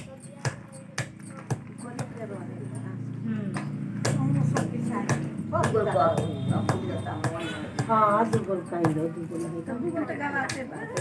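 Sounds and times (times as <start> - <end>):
quiet voices: 0.0 - 11.0.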